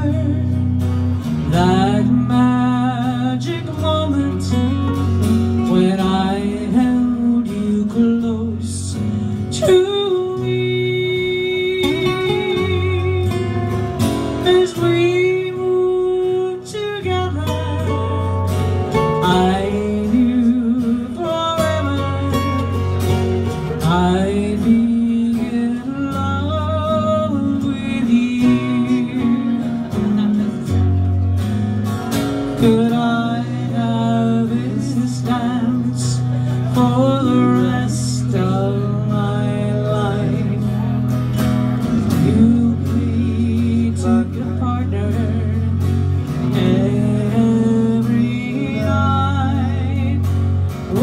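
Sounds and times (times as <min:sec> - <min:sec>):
strummed acoustic guitars: 0:00.0 - 0:51.0.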